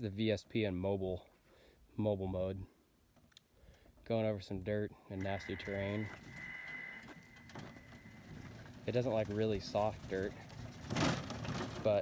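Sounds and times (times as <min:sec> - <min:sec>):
electric drive whining: 0:05.2 - 0:10.4
wheels rumbling on dirt: 0:05.2 - 0:12.0.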